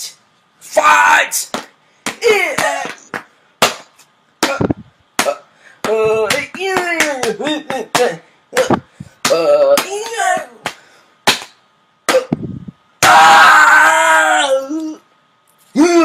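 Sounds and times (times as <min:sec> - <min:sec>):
person yelling loudly: 0:00.6 - 0:01.5, 0:02.2 - 0:03.0, 0:09.2 - 0:10.7, 0:13.0 - 0:15.0
sharp slaps or knocks: 0:01.4 - 0:12.4
person crying out: 0:02.2 - 0:03.1, 0:04.4 - 0:10.7, 0:12.1 - 0:15.1, 0:15.8 - 0:16.0.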